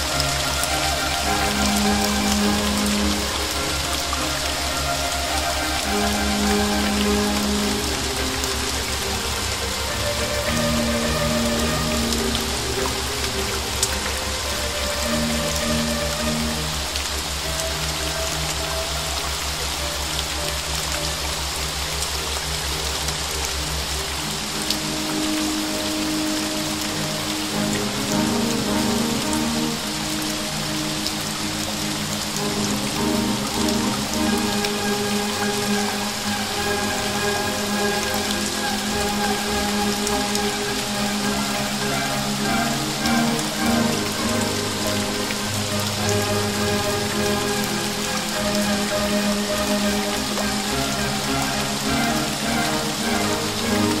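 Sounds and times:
slow classical melody: 0.0s - 54.0s
steady rain falling: 0.0s - 54.0s.

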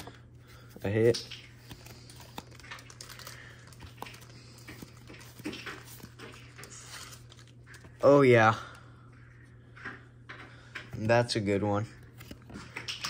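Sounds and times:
trading cards rustling and clicking: 0.0s - 8.4s, 10.3s - 13.0s.

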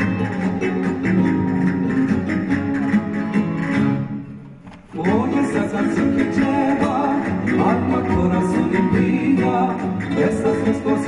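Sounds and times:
flamenco guitars strumming: 0.0s - 11.0s.

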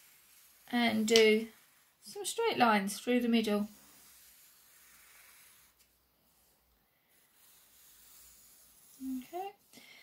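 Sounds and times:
pencil scratching on paper: 0.0s - 9.7s.

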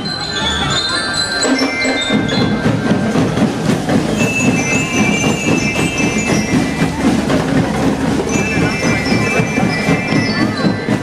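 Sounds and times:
bell-lyre notes ringing: 0.0s - 11.0s
marching band drumbeat: 1.4s - 11.0s.

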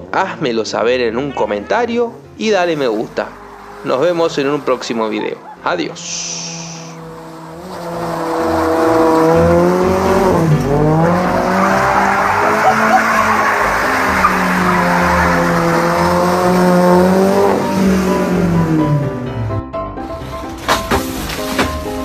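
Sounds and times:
tyres squealing: 2.5s - 17.0s
car engine revving high: 2.8s - 19.5s.

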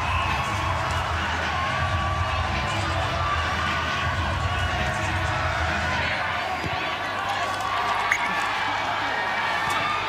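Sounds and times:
crowd cheering: 0.0s - 10.0s
stadium crowd voices: 0.0s - 10.0s.

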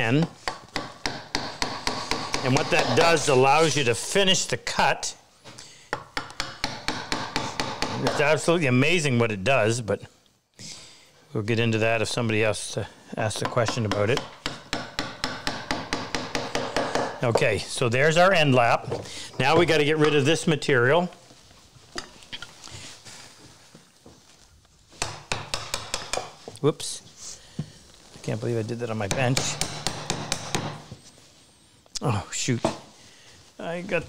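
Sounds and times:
mallet tapping on chisel: 5.9s - 8.2s, 13.4s - 17.4s, 25.0s - 26.4s.

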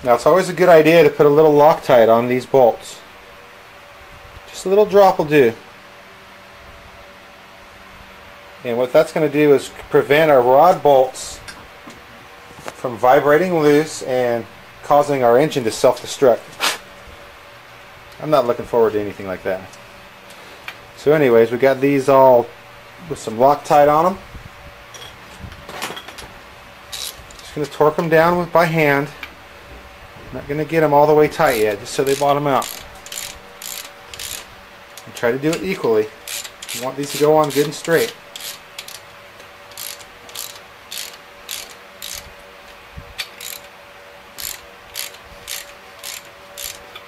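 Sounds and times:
hand tools clicking and handled: 26.9s - 27.8s, 31.4s - 43.8s, 44.4s - 47.0s.

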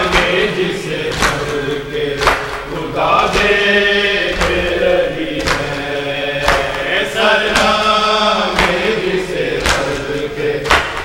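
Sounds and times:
chest-beating slaps: 0.0s - 11.0s
men chanting: 0.0s - 11.0s.

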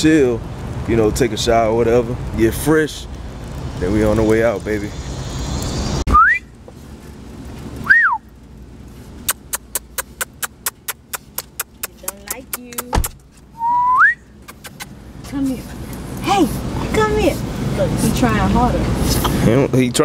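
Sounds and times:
person whistling calls: 6.1s - 6.5s, 7.8s - 8.2s, 13.6s - 14.3s
quick evenly spaced clicks: 9.2s - 12.9s.

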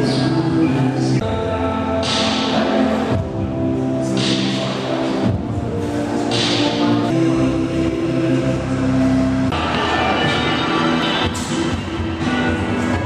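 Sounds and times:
music with sustained chords: 0.0s - 13.0s.

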